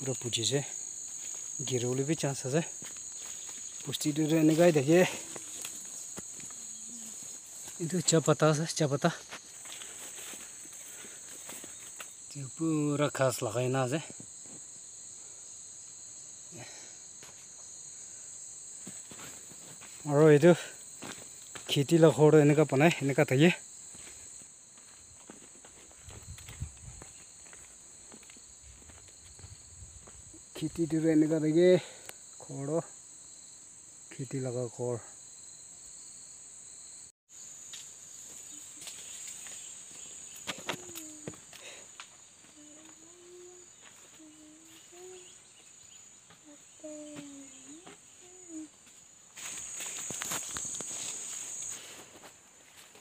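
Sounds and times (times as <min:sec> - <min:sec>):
insects buzzing: 0:00.0 - 0:53.0
soft rustles or steps: 0:09.2 - 0:12.1, 0:49.4 - 0:53.0.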